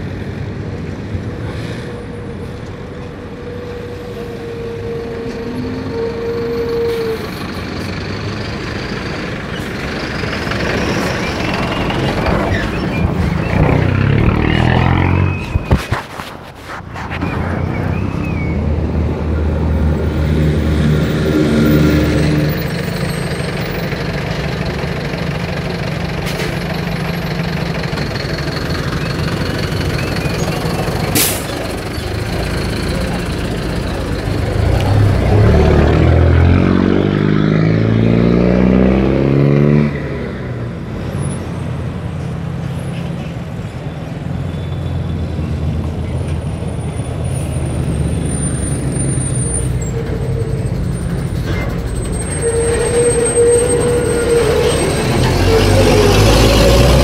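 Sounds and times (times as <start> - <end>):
bus engine running: 0.0 - 38.7, 40.2 - 57.0
vehicle engine revving: 13.0 - 16.0, 32.3 - 40.5, 53.8 - 57.0.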